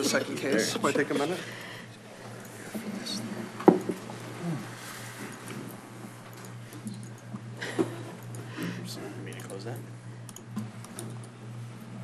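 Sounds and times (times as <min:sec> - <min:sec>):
low hum of sound system: 0:00.0 - 0:12.0
keyboard typing clicks: 0:09.3 - 0:09.6, 0:10.3 - 0:11.3.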